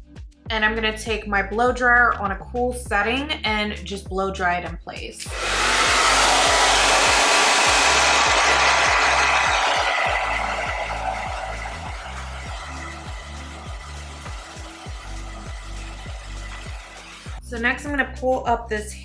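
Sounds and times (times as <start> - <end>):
hair dryer blowing air: 5.2 - 17.4
music with bass beat: 10.2 - 18.0.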